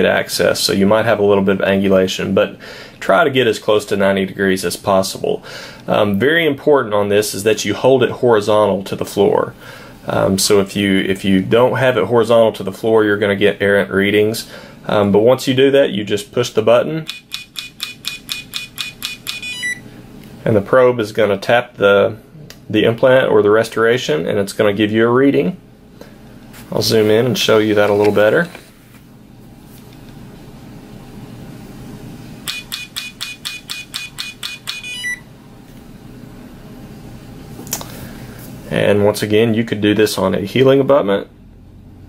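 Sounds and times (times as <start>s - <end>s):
probe tapping rapid clicks: 17.0s - 19.5s, 32.5s - 35.0s
short high beep: 17.1s - 19.8s, 32.5s - 35.2s.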